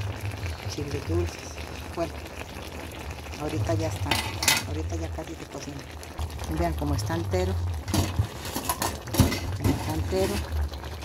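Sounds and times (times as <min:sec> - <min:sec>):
broth bubbling and sizzling: 0:00.0 - 0:11.0.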